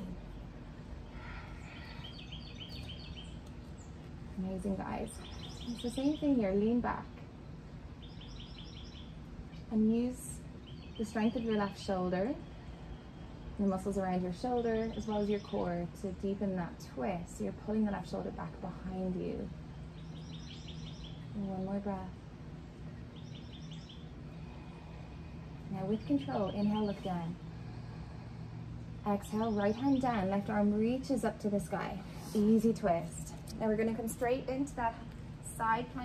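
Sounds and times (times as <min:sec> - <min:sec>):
songbird chirping: 0:00.0 - 0:16.3, 0:19.2 - 0:28.0, 0:28.9 - 0:36.0
faint outdoor background noise: 0:00.0 - 0:36.0
steady low background hum: 0:00.0 - 0:36.0
small bird chirping: 0:01.6 - 0:04.0, 0:05.2 - 0:06.4, 0:19.9 - 0:21.3, 0:23.0 - 0:24.2.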